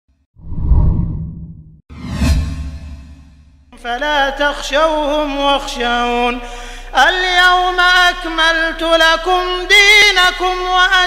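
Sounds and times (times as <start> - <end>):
deep whoosh: 0.4 - 3.5.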